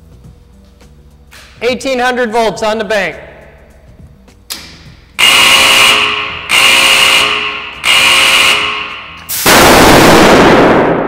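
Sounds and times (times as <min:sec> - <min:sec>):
sharp electrical bang: 0:08.6 - 0:11.0.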